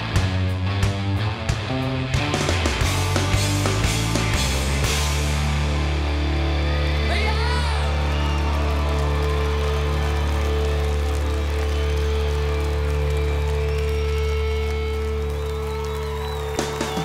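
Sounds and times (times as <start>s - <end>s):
crowd noise: 0.0s - 17.0s
live rock band: 0.0s - 17.0s.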